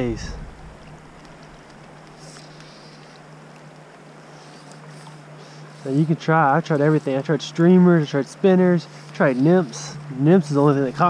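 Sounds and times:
low steady hum: 0.0 - 11.0
faint clicks: 0.5 - 5.8.

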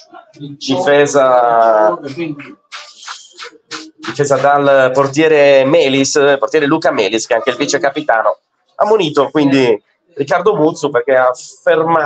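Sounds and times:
man speaking: 0.0 - 12.0
mouth click: 2.4 - 4.6.

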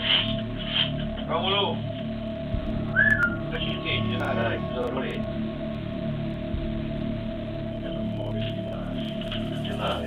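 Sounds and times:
steady background hum: 0.0 - 10.0
short whistle: 2.9 - 3.4.

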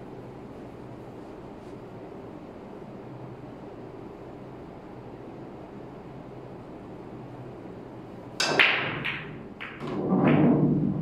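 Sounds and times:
billiard balls clacking: 8.4 - 11.0
cue tip striking ball: 8.4 - 11.0.

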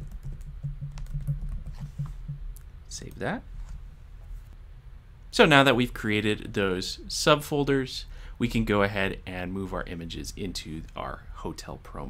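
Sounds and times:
typing on computer keyboard: 0.0 - 2.0.

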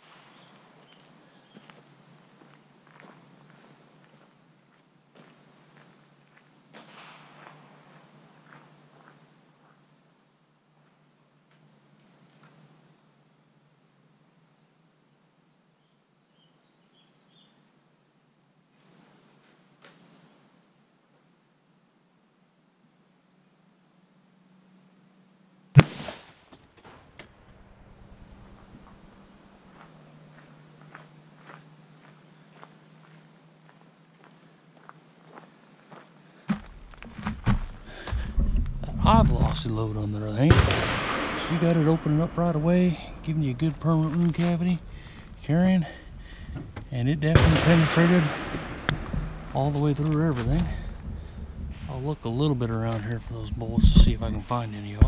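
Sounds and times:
faint outdoor ambience: 0.0 - 55.0
rifle shot with echo: 25.8 - 26.4, 40.1 - 52.0.

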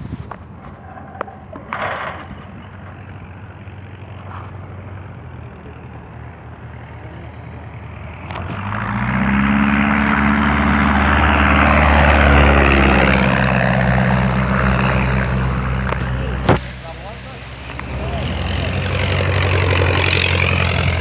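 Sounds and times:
propeller plane flying past: 0.5 - 21.0.

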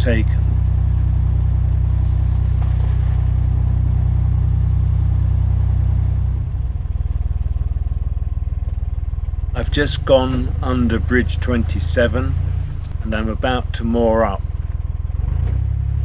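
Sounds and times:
boat diesel engine thrumming: 0.0 - 16.0.

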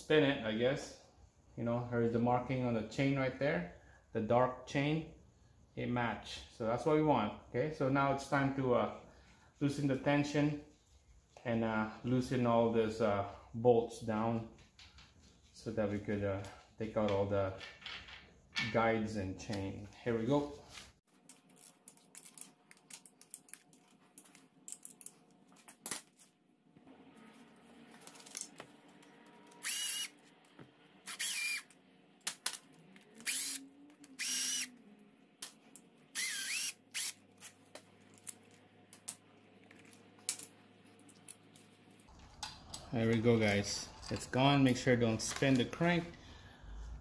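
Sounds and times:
power driver whirring: 29.4 - 30.2, 31.0 - 31.8, 33.2 - 34.8, 36.1 - 37.2.

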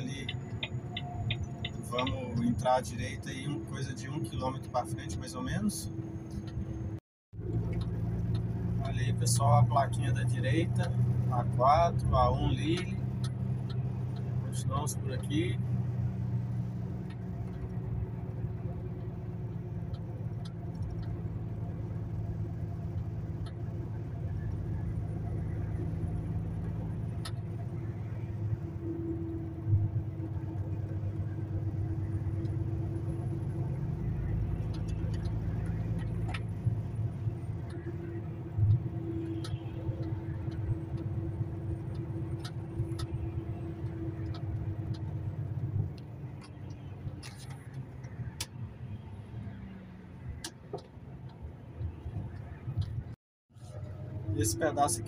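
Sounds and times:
diesel engine droning: 0.0 - 55.0
tyre and road noise: 0.0 - 55.0.

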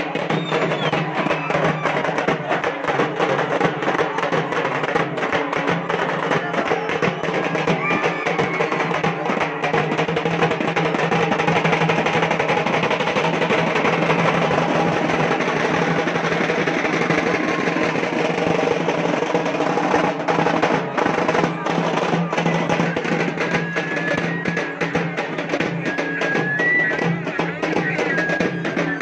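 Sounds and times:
dense crowd noise: 0.0 - 29.0
loud drumming and percussion: 0.0 - 29.0.

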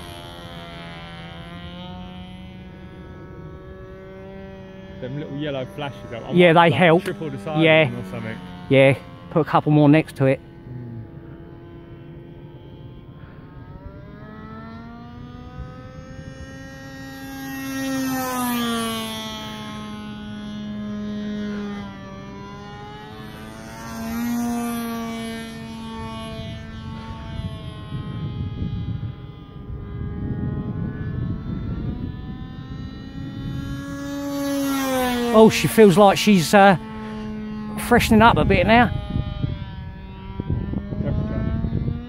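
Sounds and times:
model airplane engine buzzing: 0.0 - 42.0.

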